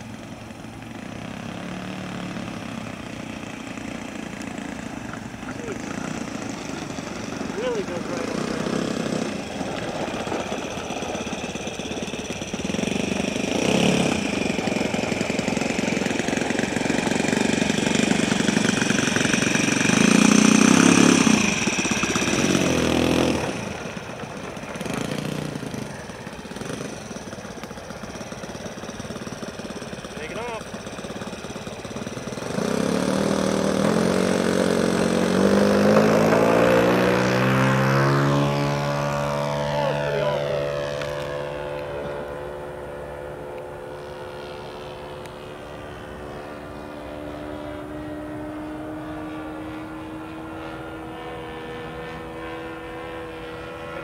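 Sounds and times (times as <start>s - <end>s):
model airplane engine running: 0.0s - 54.0s.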